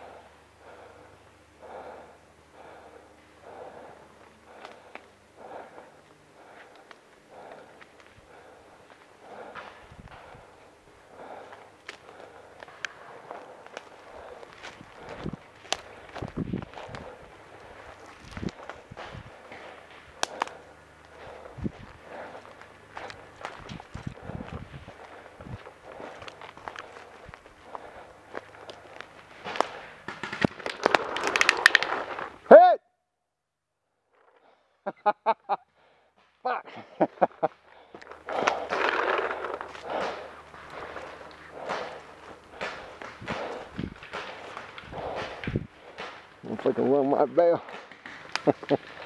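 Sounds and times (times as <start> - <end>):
footsteps on forest floor: 11.2 - 30.1, 37.4 - 49.0
paintball markers firing: 28.7 - 32.2, 38.2 - 46.4, 47.6 - 49.0.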